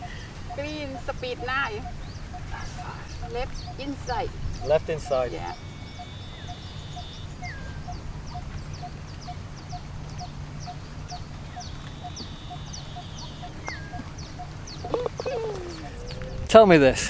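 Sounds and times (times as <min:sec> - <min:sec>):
high falling bird chirps: 0:00.1 - 0:16.5
bird whistles: 0:11.6 - 0:16.5.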